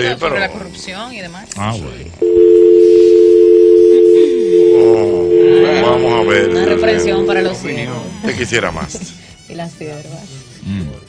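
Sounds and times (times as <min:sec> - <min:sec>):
telephone dial tone: 0:02.2 - 0:07.5.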